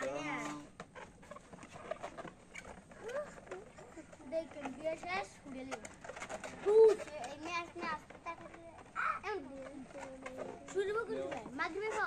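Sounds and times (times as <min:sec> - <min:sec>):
children's voices and calls: 0:02.8 - 0:12.0.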